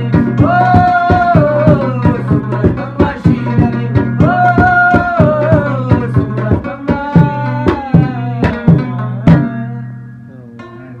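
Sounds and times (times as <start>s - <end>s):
plucked lute strings ringing: 8.6s - 11.0s.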